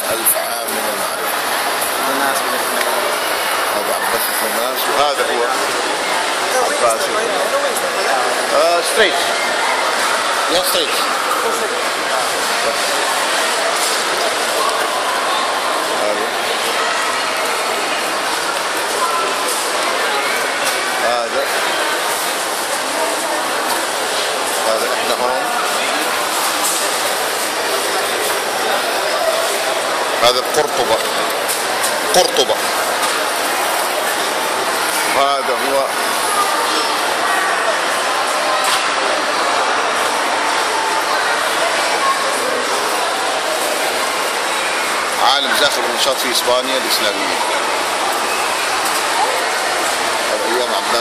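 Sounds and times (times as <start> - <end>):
faint voices: 0.0 - 51.0
shopping mall hiss: 0.0 - 51.0.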